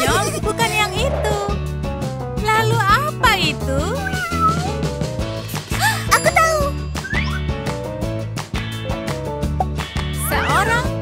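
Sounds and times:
background music: 0.0s - 11.0s
cat meowing: 4.0s - 4.8s.

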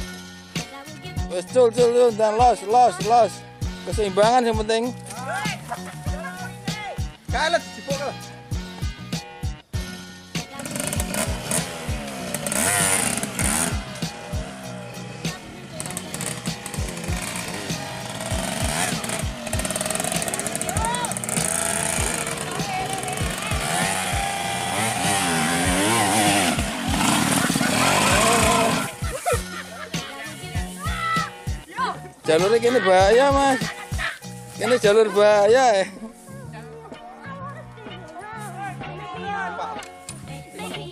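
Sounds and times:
background music with steady beat: 0.0s - 40.9s
motorcycle engine revving: 10.4s - 30.7s.

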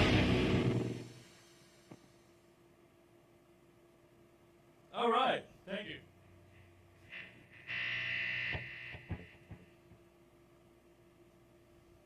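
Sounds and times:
electric guitar buzz: 0.0s - 1.2s, 7.0s - 9.7s
amplifier hum: 0.0s - 1.3s, 1.9s - 12.0s.

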